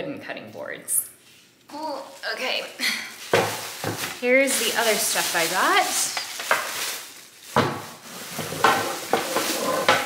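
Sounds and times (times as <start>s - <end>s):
paper wrapping crinkling: 1.8s - 10.0s.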